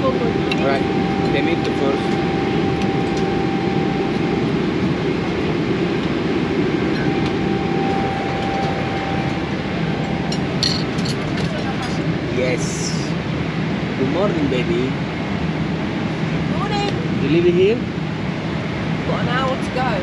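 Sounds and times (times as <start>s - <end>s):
airliner cabin drone: 0.0s - 20.0s.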